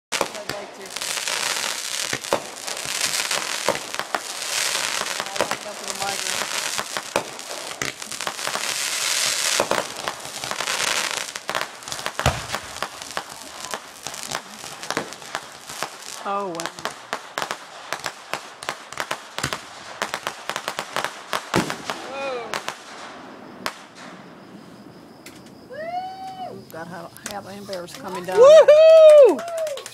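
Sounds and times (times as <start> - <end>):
fireworks bangs and pops: 0.1 - 29.9
fireworks crackling: 0.1 - 29.9
deep firework bang: 12.0 - 15.5, 21.5 - 25.6.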